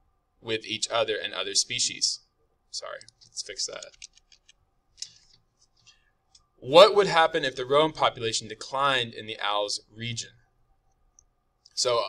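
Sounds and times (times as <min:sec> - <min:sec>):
keyboard and mouse clicks: 0:03.0 - 0:05.2.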